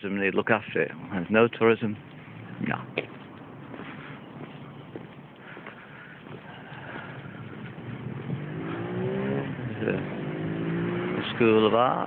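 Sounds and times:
car engine accelerating: 6.2s - 12.0s.

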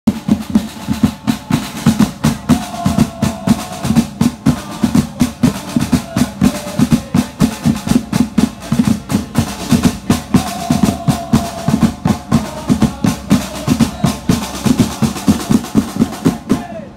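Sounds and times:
snare and tom drums beating: 0.1s - 16.9s.

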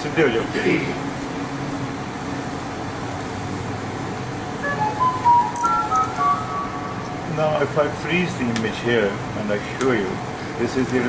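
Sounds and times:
electronic beeping melody: 4.6s - 7.3s.

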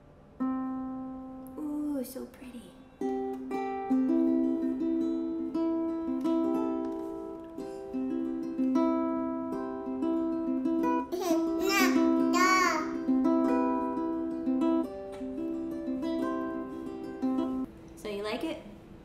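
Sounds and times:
harp ukulele being plucked: 0.4s - 1.6s, 3.0s - 17.7s
child's vocal sound: 11.2s - 13.0s.

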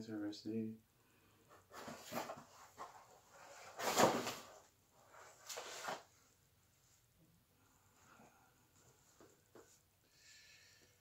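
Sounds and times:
rustling of books and packaging: 1.5s - 6.3s.

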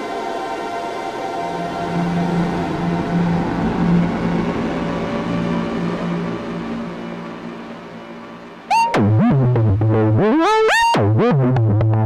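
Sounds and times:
synthesizer drone: 0.0s - 11.9s.

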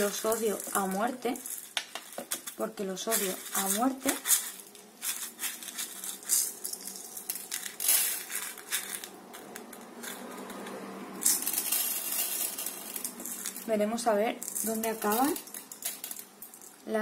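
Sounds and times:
small stones rattling and clicking: 0.0s - 13.7s, 14.4s - 16.8s.

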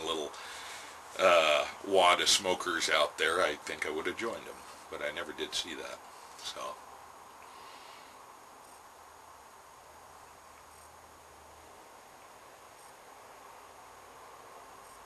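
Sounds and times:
background hiss: 0.0s - 15.0s.

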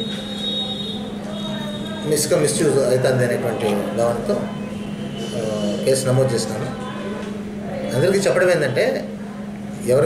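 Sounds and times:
electrical hum and hiss: 0.0s - 10.0s.

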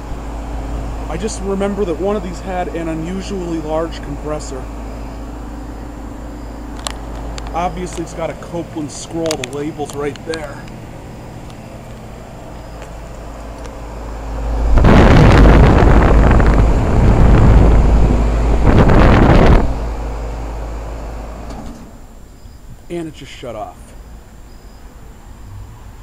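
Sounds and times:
heat pump humming: 0.0s - 26.0s
loud rushing noise: 13.8s - 20.6s.

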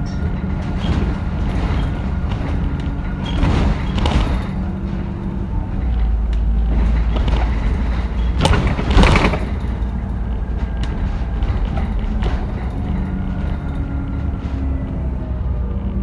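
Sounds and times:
interior panels rattling: 0.0s - 15.7s
bus diesel engine drone: 0.0s - 16.0s.

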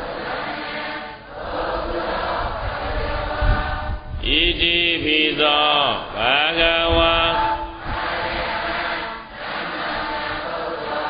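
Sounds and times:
voices chanting: 0.0s - 11.0s
person chanting long sliding notes: 1.8s - 10.6s.

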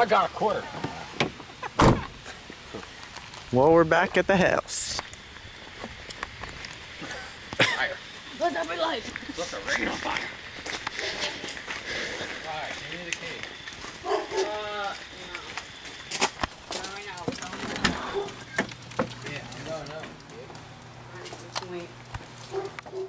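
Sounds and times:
indistinct talk and laughter: 7.0s - 12.5s.

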